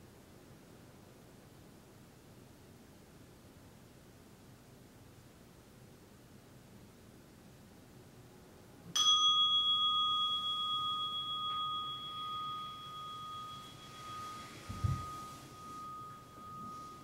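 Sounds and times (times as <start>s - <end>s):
meditation bell ringing: 9.0s - 17.0s.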